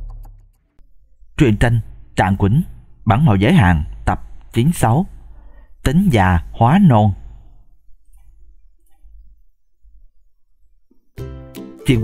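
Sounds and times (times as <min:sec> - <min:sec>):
faint low hum: 0:00.0 - 0:11.2
synthesized narrator voice: 0:01.2 - 0:07.8.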